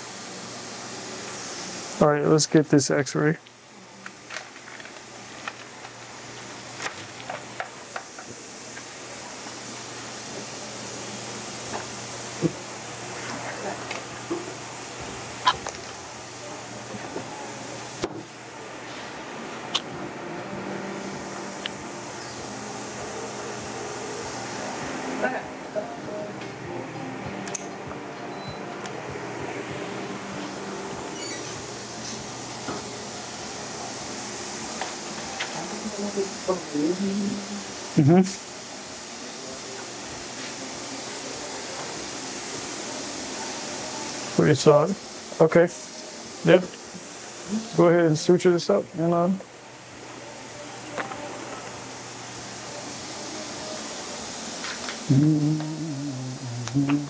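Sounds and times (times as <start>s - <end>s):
steady hiss: 0.0s - 57.0s
faint murmured voices: 8.8s - 44.4s.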